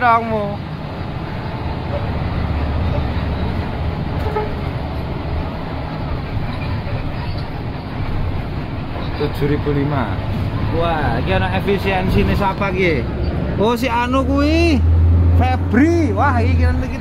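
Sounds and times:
bus engine and road noise: 0:00.0 - 0:17.0.

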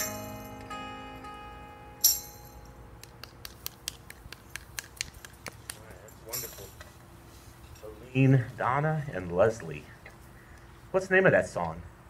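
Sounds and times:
tambourine shake: 0:00.0 - 0:00.7, 0:02.0 - 0:02.8
acoustic guitar chord ringing: 0:00.0 - 0:03.0
light handclaps: 0:03.0 - 0:06.5.

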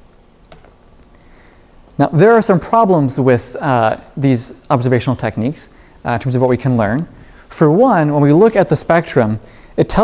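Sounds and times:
short high electronic beeps: 0:01.3 - 0:01.9.

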